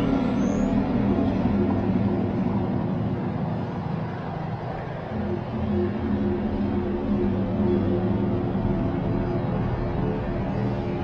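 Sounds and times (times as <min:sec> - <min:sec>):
airport terminal rumble and hum: 0:00.0 - 0:11.0.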